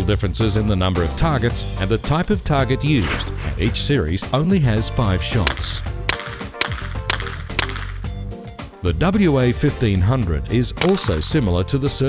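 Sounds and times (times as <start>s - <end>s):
background music: 0.0s - 12.0s
handgun shots: 5.4s - 8.0s, 10.8s - 11.3s.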